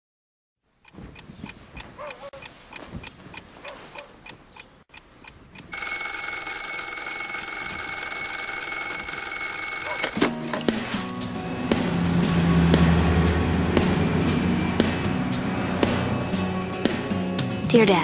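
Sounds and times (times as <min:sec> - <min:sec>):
alarm clock ticking: 0:04.2 - 0:10.3
alarm ringing: 0:05.7 - 0:10.3.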